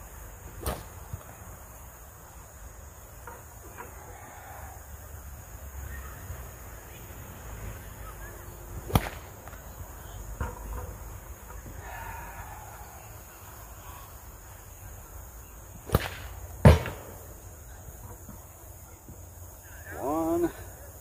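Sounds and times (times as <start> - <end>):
sling cracking like a whip: 0.6 - 1.1, 8.8 - 9.8, 15.8 - 17.3.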